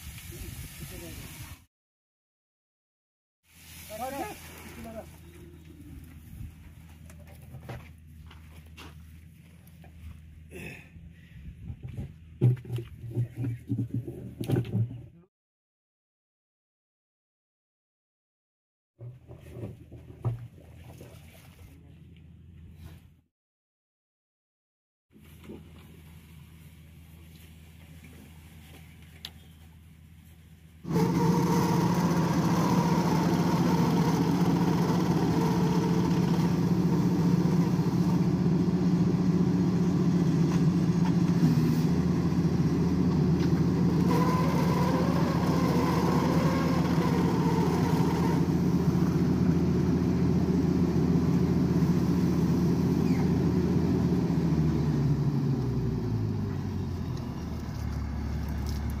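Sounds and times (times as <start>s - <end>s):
drilling rig engine running: 30.9s - 59.0s.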